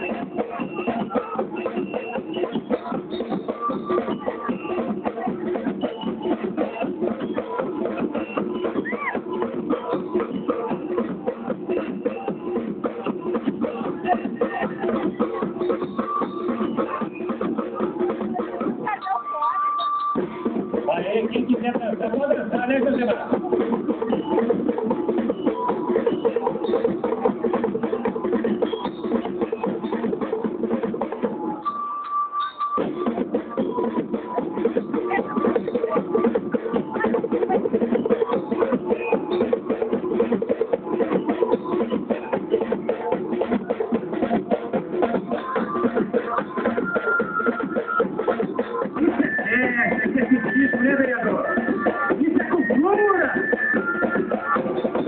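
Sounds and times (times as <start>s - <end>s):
fast drumming: 0.0s - 19.4s, 20.2s - 31.6s, 32.8s - 55.0s
parade band playing: 0.0s - 55.0s.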